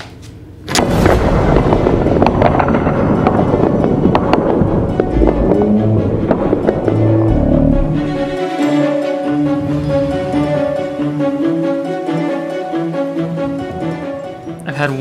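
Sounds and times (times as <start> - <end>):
music: 0.8 - 15.0.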